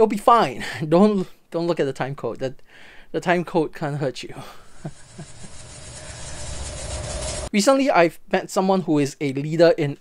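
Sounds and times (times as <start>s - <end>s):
rumbling whoosh: 4.9s - 7.5s.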